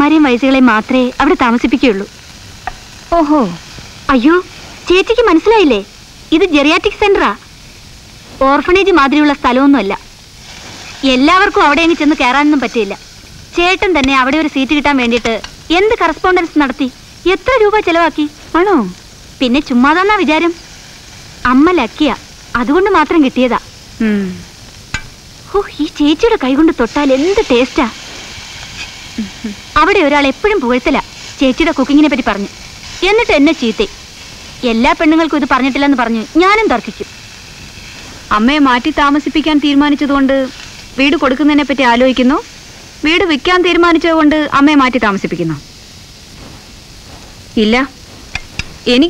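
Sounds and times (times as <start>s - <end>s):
food sizzling in a pan: 0.0s - 49.0s.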